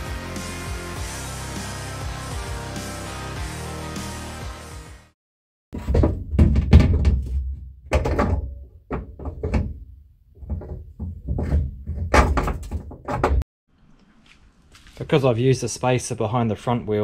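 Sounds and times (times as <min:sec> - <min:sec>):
metal knocks and thuds: 0:05.7 - 0:13.4.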